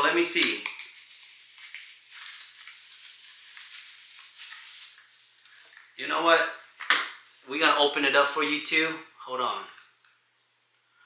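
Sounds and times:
packaging crinkling and rustling: 0:00.5 - 0:06.0.

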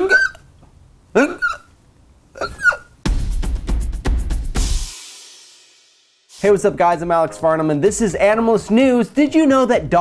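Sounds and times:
high sliding yelps: 0:00.0 - 0:00.5, 0:01.2 - 0:01.8, 0:02.4 - 0:03.0.

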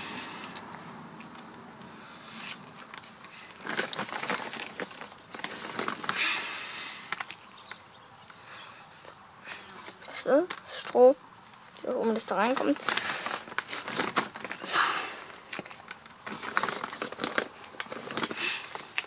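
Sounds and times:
peat crumbling by hand: 0:02.4 - 0:07.4, 0:12.0 - 0:19.0.

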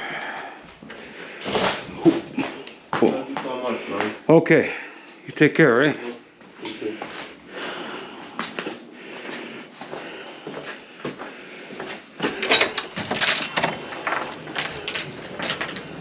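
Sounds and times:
footsteps: 0:06.4 - 0:12.4
metal wind chimes ringing: 0:13.0 - 0:16.0.

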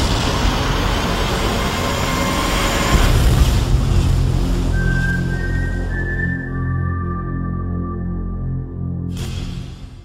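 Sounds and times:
rushing roar over deep rumble: 0:00.0 - 0:08.9
heavy low hit: 0:02.0 - 0:05.0.

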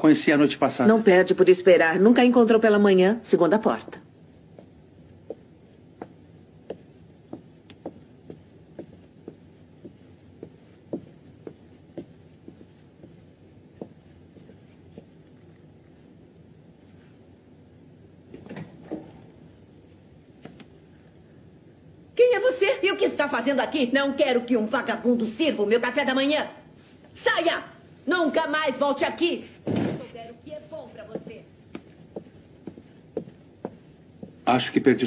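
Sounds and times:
background hiss: 0:00.0 - 0:35.0
footsteps climbing stairs: 0:03.8 - 0:16.3, 0:29.6 - 0:34.5.

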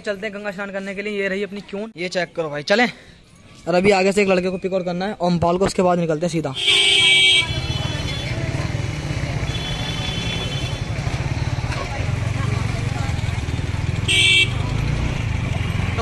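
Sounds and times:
low traffic rumble: 0:06.5 - 0:16.0
vehicle horns: 0:06.6 - 0:08.6, 0:09.4 - 0:11.3, 0:13.9 - 0:14.9.

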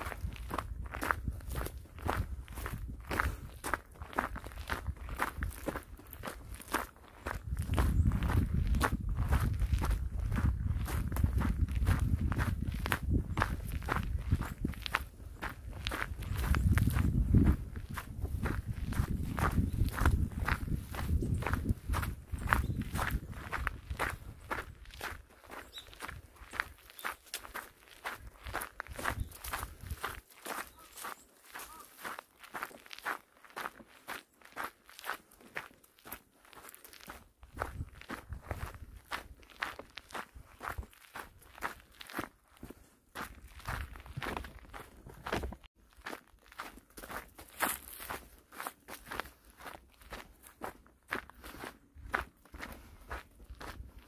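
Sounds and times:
footsteps crunching on dirt path: 0:00.0 - 0:54.0.

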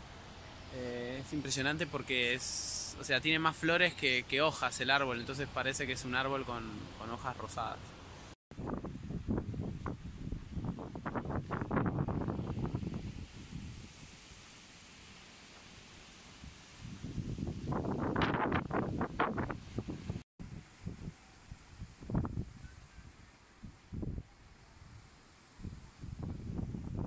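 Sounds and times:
wind gusting across microphone: 0:08.5 - 0:14.4, 0:16.3 - 0:27.0.

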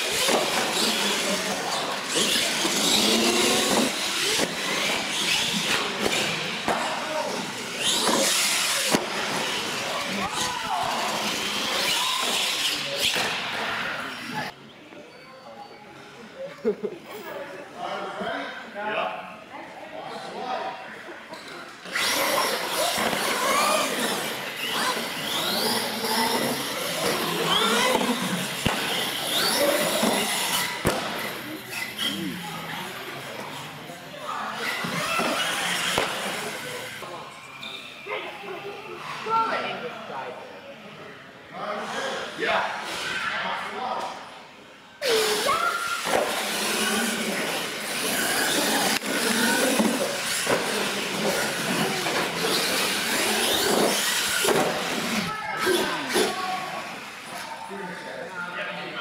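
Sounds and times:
indistinct voices in hall: 0:00.0 - 0:59.0.

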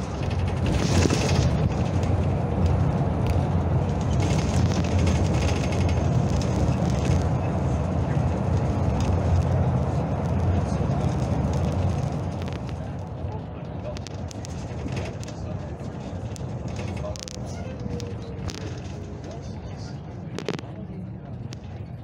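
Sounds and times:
vehicle engine and road rumble: 0:00.0 - 0:22.0.

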